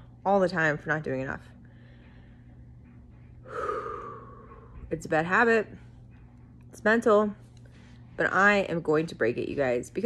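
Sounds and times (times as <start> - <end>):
woman breathing in: 1.6 - 2.7, 3.4 - 4.9.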